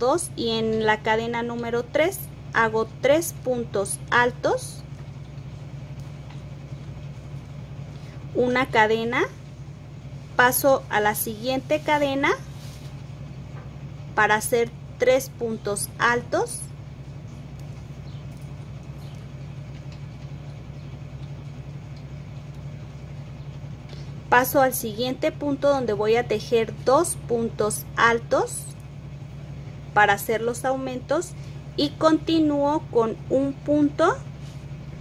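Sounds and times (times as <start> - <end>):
low background hum: 0.0 - 35.0.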